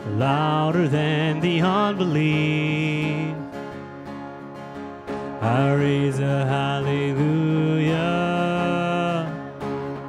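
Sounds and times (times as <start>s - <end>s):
worship band playing: 0.0s - 10.0s
person singing long notes: 5.4s - 9.5s.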